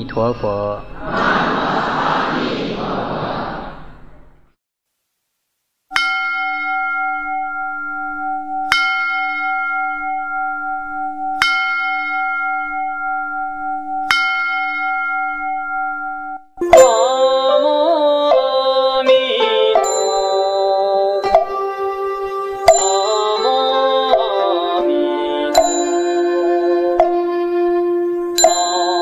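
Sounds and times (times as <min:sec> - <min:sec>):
rushing noise: 0:00.9 - 0:04.5.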